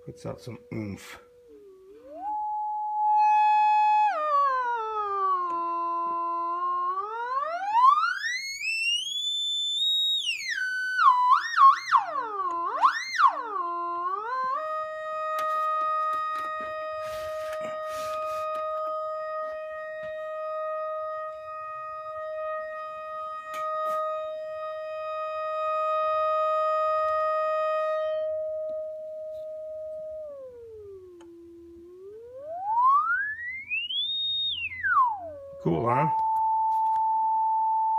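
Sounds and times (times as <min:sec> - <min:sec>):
electronic oscillator tone sweeping: 0:00.0 - 0:37.9.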